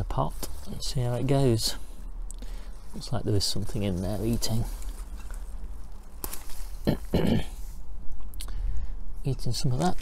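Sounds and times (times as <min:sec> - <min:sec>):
low steady rumble: 0:00.0 - 0:10.0
leaves rustling: 0:00.3 - 0:06.9
person coughing: 0:06.8 - 0:07.7.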